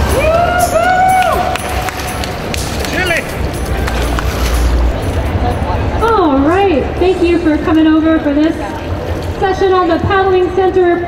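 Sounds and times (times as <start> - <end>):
exhibition hall din: 0.0 - 11.0
water splashing: 1.2 - 10.8.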